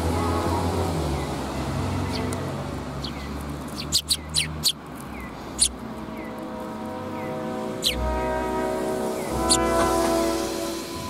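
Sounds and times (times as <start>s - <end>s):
sparrows chirping: 1.0s - 8.4s, 9.0s - 10.1s.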